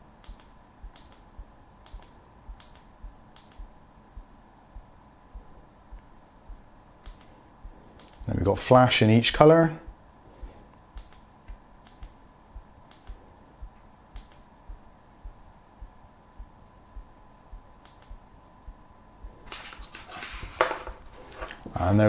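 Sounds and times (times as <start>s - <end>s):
steady hum with low pulse: 0.0s - 22.0s
sharp little clicks: 0.2s - 3.7s, 7.0s - 8.3s, 11.0s - 12.2s, 12.8s - 14.5s, 17.8s - 18.2s.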